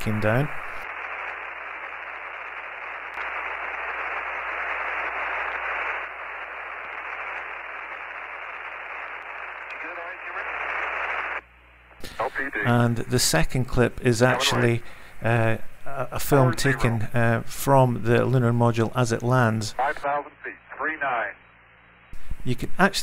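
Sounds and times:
radio static hiss: 0.0 - 23.0
faint voice over radio: 9.7 - 11.4, 12.2 - 12.7, 14.3 - 14.8, 19.8 - 21.4.

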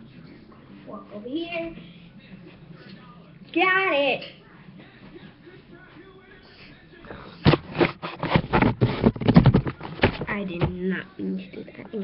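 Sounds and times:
craft materials scraping and knocking: 7.5 - 10.3.

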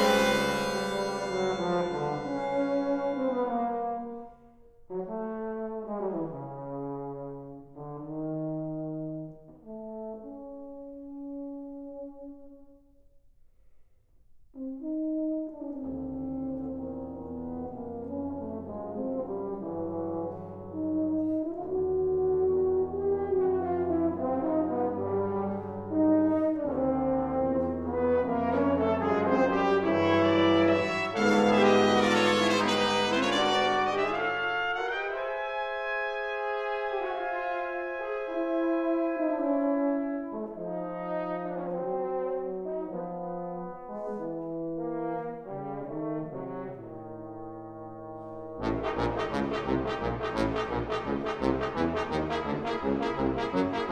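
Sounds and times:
brass ensemble playing chords: 0.0 - 4.4, 17.6 - 53.9.

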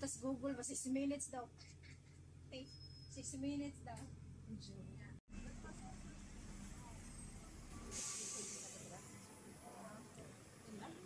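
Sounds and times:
bus engine rumble: 0.0 - 11.0
burst of hiss: 7.9 - 9.1.

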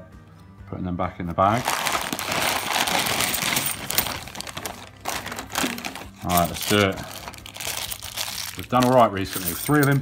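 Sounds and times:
plastic bags crinkling: 1.5 - 9.9
coins clinking: 1.8 - 10.0.

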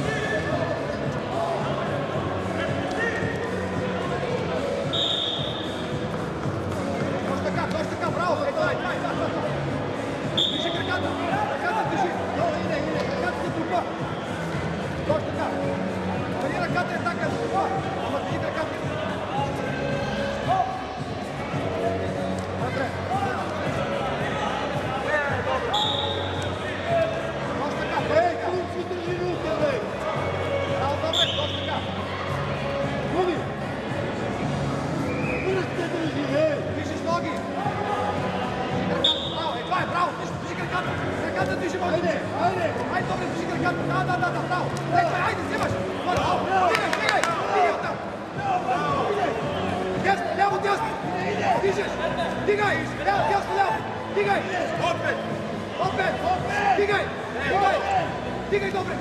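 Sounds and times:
hall background noise: 0.0 - 59.0
hubbub of voices: 0.0 - 59.0
whistle blown: 4.9 - 5.8, 10.4 - 11.0, 25.7 - 26.5, 31.1 - 31.8, 35.1 - 35.5, 39.0 - 39.6.

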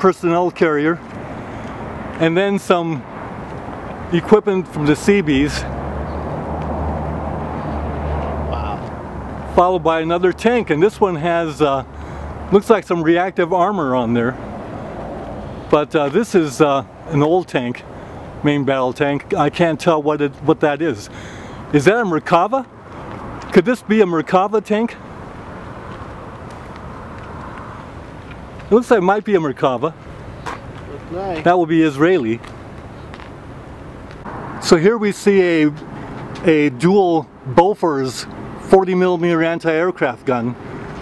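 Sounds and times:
distant traffic hum: 0.0 - 41.0
low city rumble: 0.0 - 41.0.

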